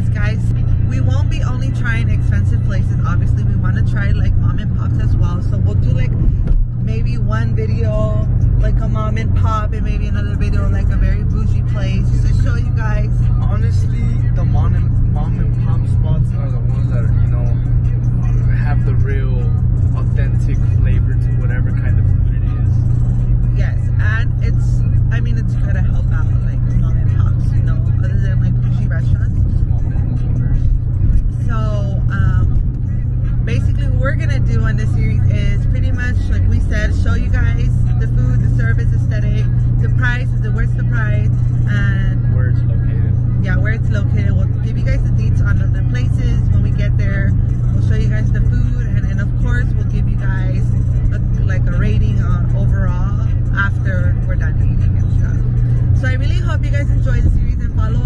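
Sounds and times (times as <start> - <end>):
woman talking: 0.0 - 16.8, 23.4 - 29.9, 31.3 - 32.8, 33.4 - 58.0
car road and engine rumble: 0.0 - 58.0.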